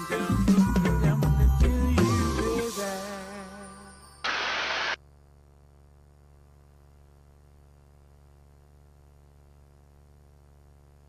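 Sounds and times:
intercom static burst: 4.2s - 5.0s.

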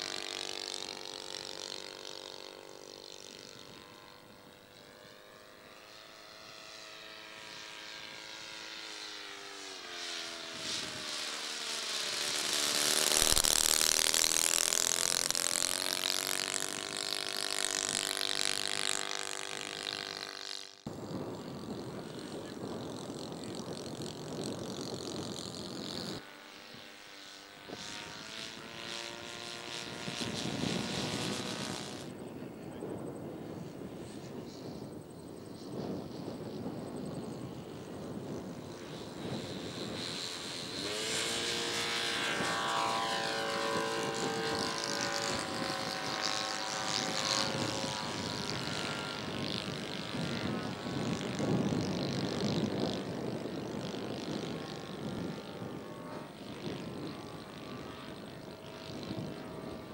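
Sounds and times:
model airplane engines: 0.0s - 59.9s.

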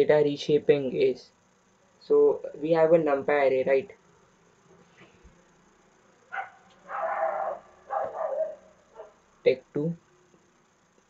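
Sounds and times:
short animal calls: 6.3s - 9.2s.

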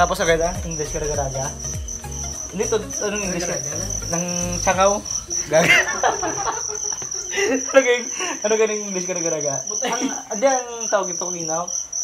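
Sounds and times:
crickets chirping: 0.0s - 12.0s
burst of laughter: 5.4s - 8.4s, 9.7s - 10.3s.

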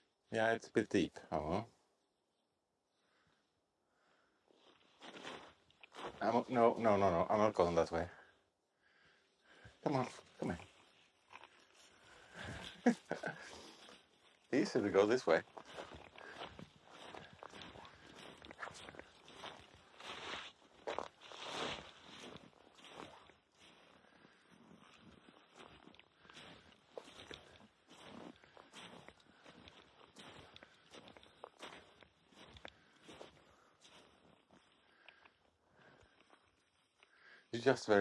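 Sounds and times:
footsteps in deep snow: 4.5s - 8.1s, 9.6s - 34.8s.

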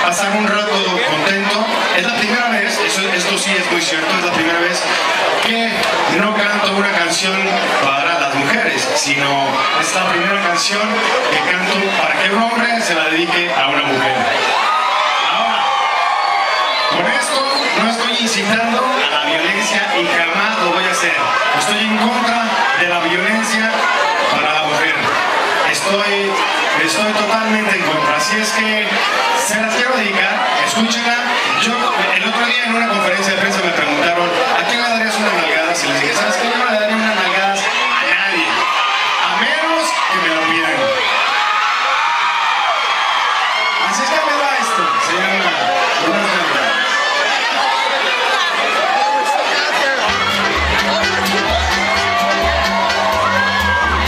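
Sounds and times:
audience cheering and shouting: 0.0s - 54.0s.

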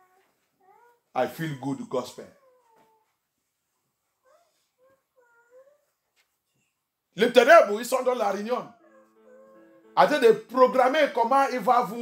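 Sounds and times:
faint high-pitched cry: 0.0s - 3.2s, 4.2s - 6.0s, 8.7s - 10.0s.

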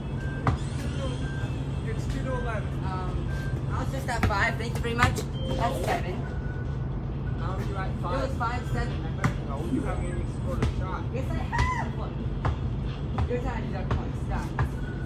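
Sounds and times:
steady low hum: 0.0s - 15.0s
basketball bouncing on pavement: 0.4s - 0.7s, 4.0s - 5.2s, 9.2s - 9.5s, 10.5s - 14.9s.

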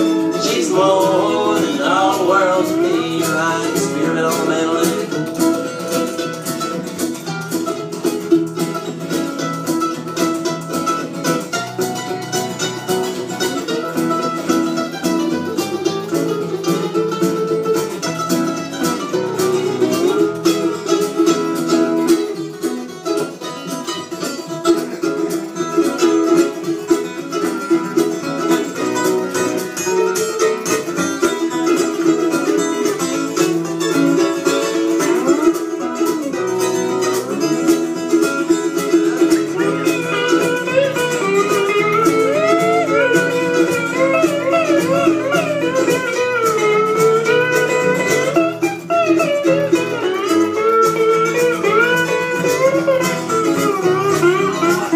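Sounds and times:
acoustic guitar picking: 0.0s - 54.9s.

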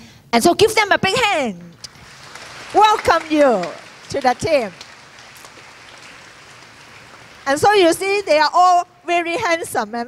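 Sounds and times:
audience applause: 1.8s - 8.4s.

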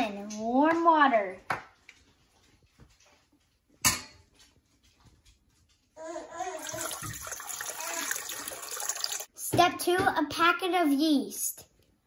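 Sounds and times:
water pouring into metal bowl: 6.6s - 9.3s.

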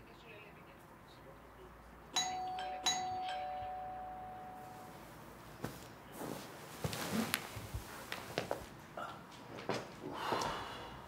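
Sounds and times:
doorbell chime: 2.2s - 5.2s.

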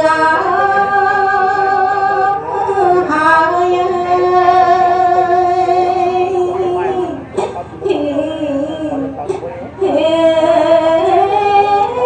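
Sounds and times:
woman chanting unaccompanied: 0.0s - 12.0s.

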